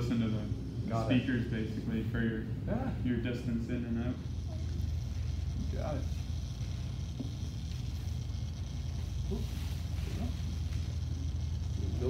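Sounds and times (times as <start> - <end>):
simulated welding sizzle: 0.0 - 12.0.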